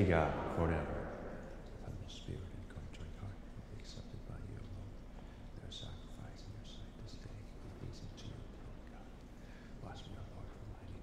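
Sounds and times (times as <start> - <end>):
man murmuring a prayer: 1.8 - 11.0.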